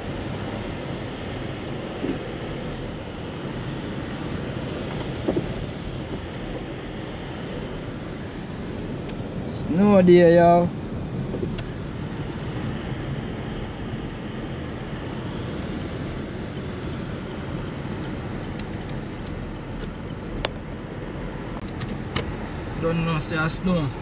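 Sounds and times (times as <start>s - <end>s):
car engine: 0.0s - 24.0s
tyres on wet road: 0.0s - 24.0s.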